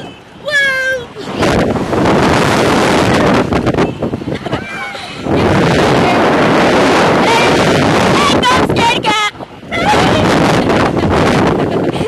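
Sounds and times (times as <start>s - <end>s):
loud wind rush on microphone: 0.0s - 12.0s
riders screaming and laughing: 4.3s - 5.7s.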